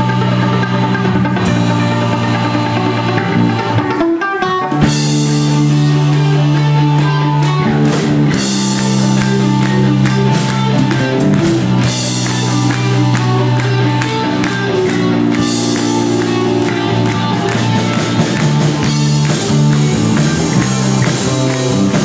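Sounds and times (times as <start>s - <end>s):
live rock band playing: 0.0s - 22.0s.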